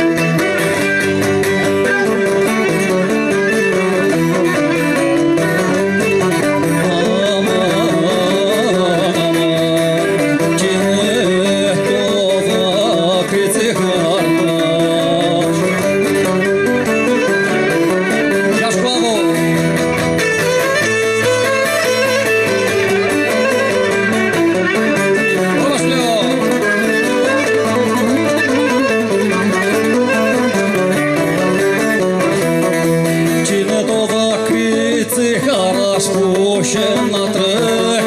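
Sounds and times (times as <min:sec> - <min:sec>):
bowed fiddle fast melody: 0:00.0 - 0:38.0
plucked string accompaniment: 0:00.0 - 0:38.0.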